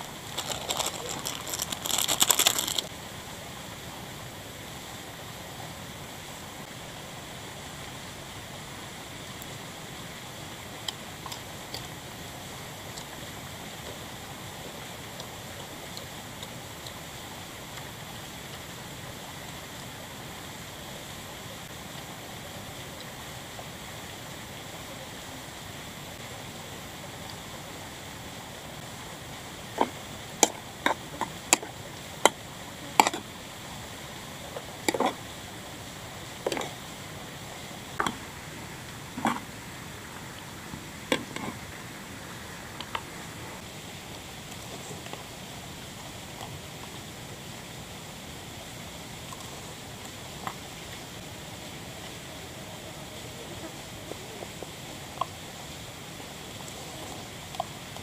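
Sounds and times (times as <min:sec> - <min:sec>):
stream rushing: 0:00.0 - 0:58.0.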